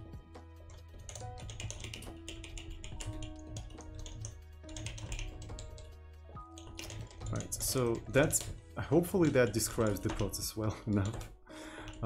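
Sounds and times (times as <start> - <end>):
background music: 0.0 - 12.0
rapid typing on keyboard: 0.6 - 12.0.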